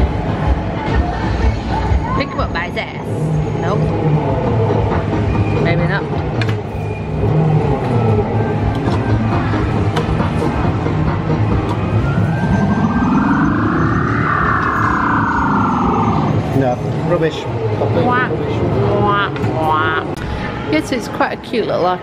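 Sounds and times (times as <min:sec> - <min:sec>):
traffic: 0:00.0 - 0:22.0
rising and falling tone: 0:07.0 - 0:20.2.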